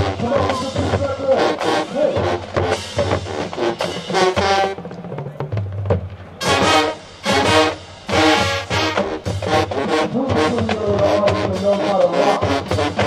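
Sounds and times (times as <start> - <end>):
brass chords: 0.0 - 13.0
drums: 0.0 - 13.0
marching band playing: 0.0 - 13.0.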